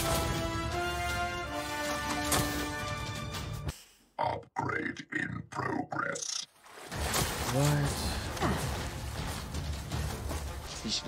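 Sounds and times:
person's broken wordless voice bursts: 0:04.2 - 0:06.4.

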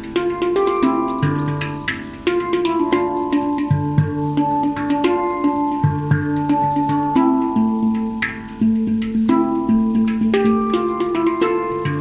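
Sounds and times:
handpan played with fingers: 0:00.0 - 0:12.0.

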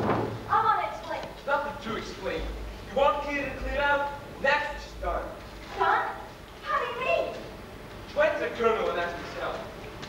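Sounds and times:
man speaking: 0:01.4 - 0:05.4, 0:08.1 - 0:09.7.

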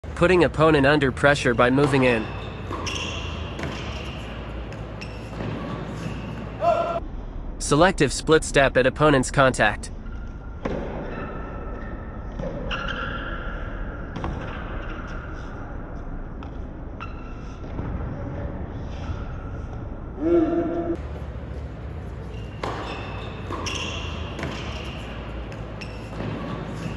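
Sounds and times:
steady background noise: 0:00.0 - 0:26.9
tennis ball bouncing: 0:01.6 - 0:06.6, 0:21.0 - 0:26.9
tennis ball struck by racket: 0:01.8 - 0:06.5, 0:22.5 - 0:26.9.

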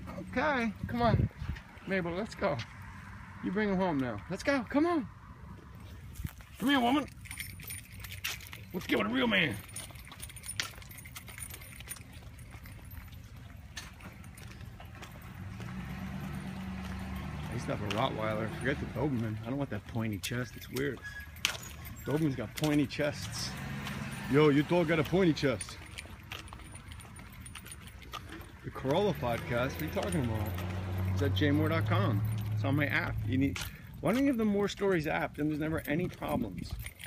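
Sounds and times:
footsteps on concrete: 0:00.0 - 0:02.8, 0:05.4 - 0:37.0
metallic jingling: 0:05.8 - 0:37.0
low engine hum: 0:09.6 - 0:20.0.

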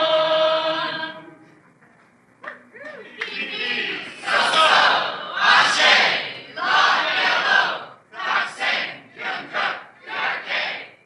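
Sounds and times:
crowd shouting in unison: 0:03.6 - 0:10.8.

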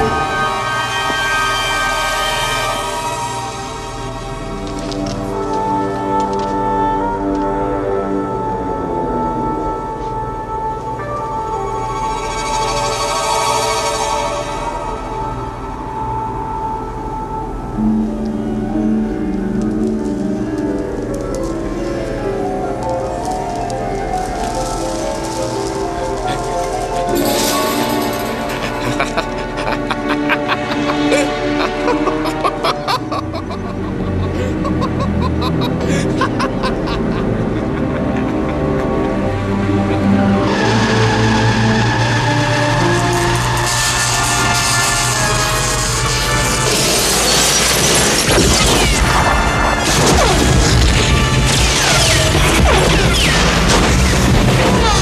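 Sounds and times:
orchestral music: 0:00.0 - 0:55.0
crashing noise: 0:43.0 - 0:55.0.

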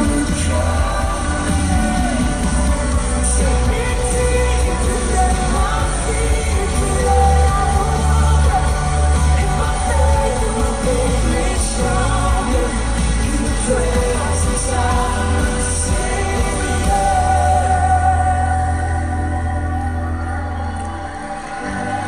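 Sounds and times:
worship song with singer and band: 0:00.0 - 0:22.0.

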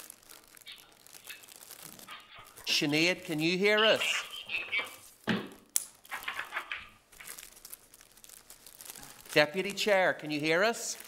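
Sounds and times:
crinkling and rustling: 0:00.0 - 0:11.0.

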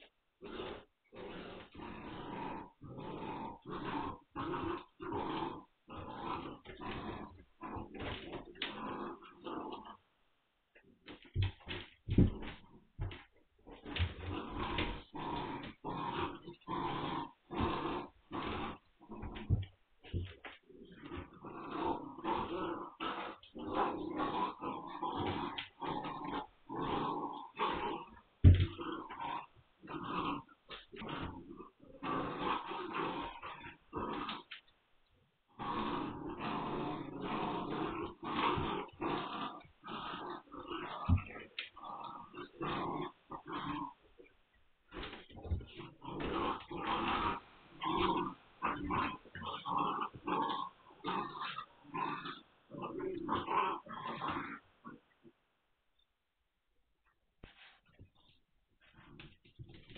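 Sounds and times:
puppies growling in play: 0:00.0 - 0:10.2, 0:10.8 - 0:55.5, 0:57.4 - 0:59.9.

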